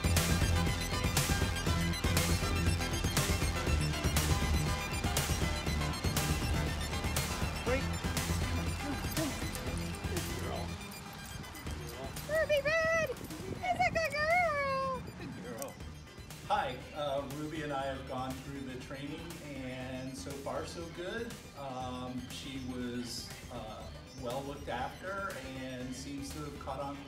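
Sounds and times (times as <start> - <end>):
background music with a beat: 0.0 - 27.0.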